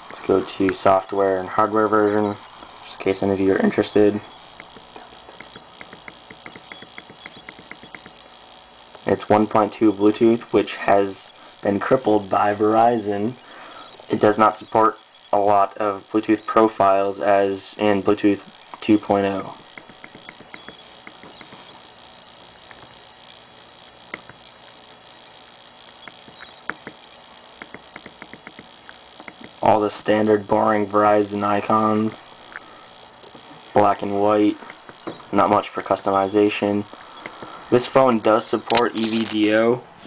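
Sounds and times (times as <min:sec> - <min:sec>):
steady hiss: 0:00.0 - 0:40.0.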